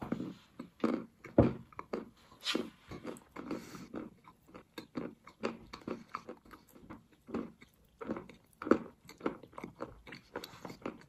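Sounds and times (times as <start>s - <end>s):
chewing crunchy food: 0.0s - 11.0s.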